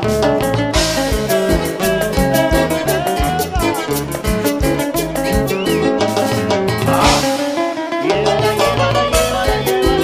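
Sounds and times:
latin dance band music: 0.0 - 10.0.

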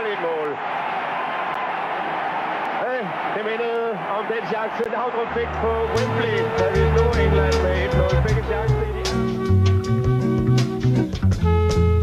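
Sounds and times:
stadium crowd cheering: 0.0 - 9.7
commentator vocalizing: 4.4 - 9.3.

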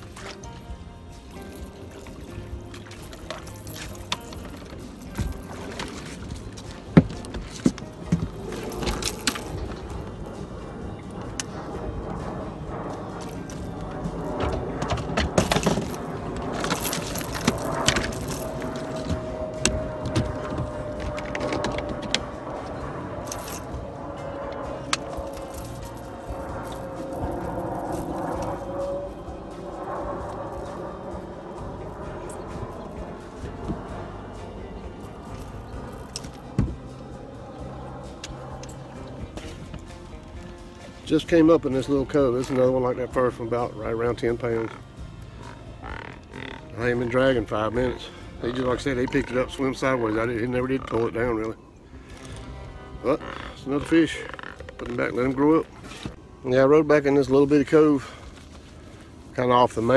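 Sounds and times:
fishing gear clicking and rattling: 0.0 - 56.2.

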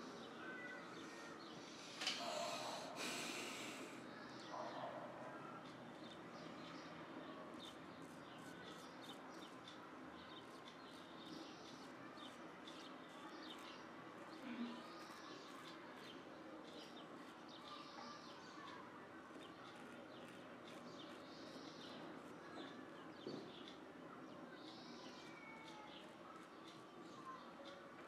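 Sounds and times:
razor scraping stubble: 7.5 - 18.6, 19.3 - 22.7.

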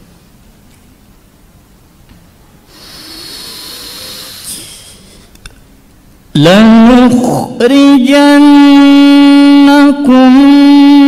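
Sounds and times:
man's hissing in-breath: 2.7 - 5.3
man reciting: 6.3 - 11.0.

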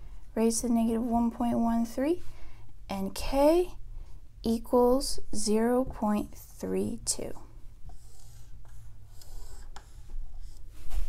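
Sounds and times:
marker squeaking on a whiteboard: 7.9 - 10.7.

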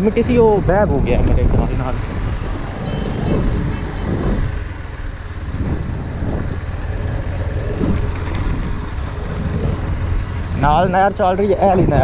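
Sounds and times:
tyres and wind rumble: 0.0 - 12.0
motorcycle engine running: 2.1 - 12.0.

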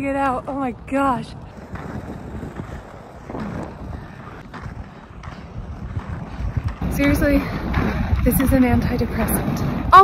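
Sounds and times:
skate wheels rolling on asphalt: 0.0 - 10.0
wind on microphone: 0.0 - 10.0.

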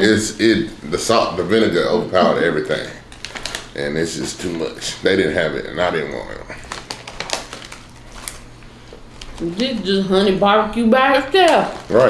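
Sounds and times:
potato chips crunching: 2.2 - 3.8, 5.8 - 8.6, 11.5 - 12.0
foil bag handled: 3.1 - 3.8, 5.8 - 9.6, 11.4 - 12.0.

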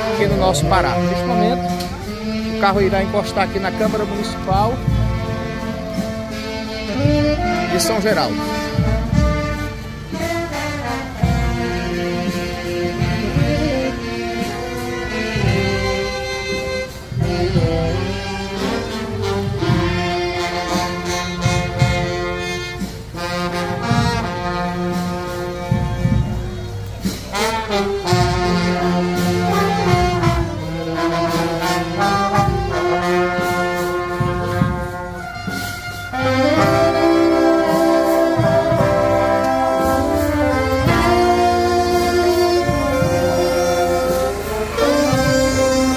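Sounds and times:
marching band brass playing: 0.0 - 45.9.

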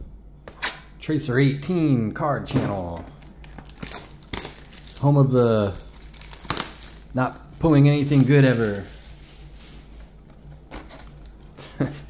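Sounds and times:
plastic wrap crinkling: 3.1 - 11.9.

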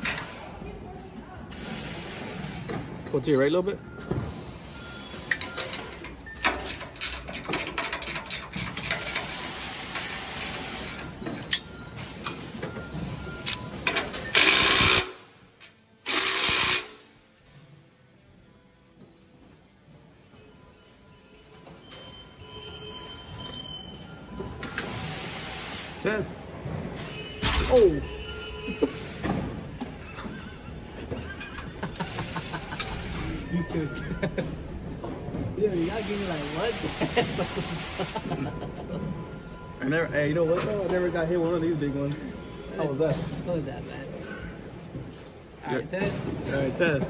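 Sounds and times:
steel parts clicking and rattling: 5.3 - 11.7.

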